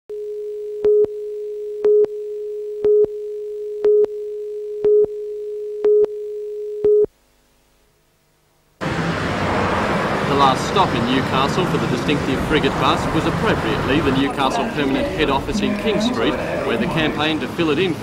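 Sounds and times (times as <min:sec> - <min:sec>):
street traffic noise: 0:08.8 - 0:18.0
steady tone: 0:13.6 - 0:17.6.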